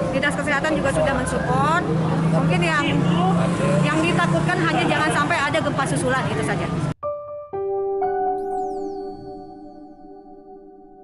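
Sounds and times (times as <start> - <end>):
woman speaking: 3.9 - 6.8.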